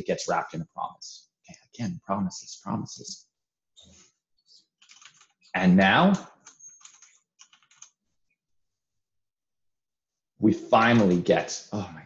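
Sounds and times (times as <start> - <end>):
typing on computer keyboard: 4.8 - 5.4, 6.4 - 8.0.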